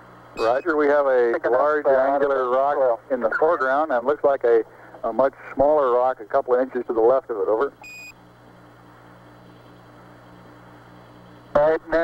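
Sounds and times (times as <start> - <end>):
radio hiss and hum: 0.3 - 12.0
short high radio beep: 0.4 - 0.8.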